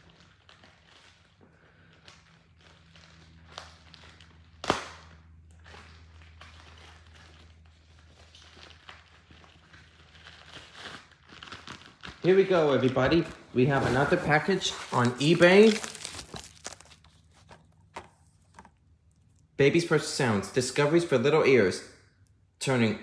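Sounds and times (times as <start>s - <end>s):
package rustling and crackling: 5.6s - 19.5s.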